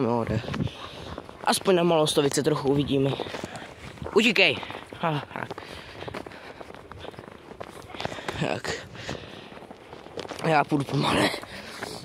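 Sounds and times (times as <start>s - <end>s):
footsteps crunching in snow: 0.0s - 12.0s.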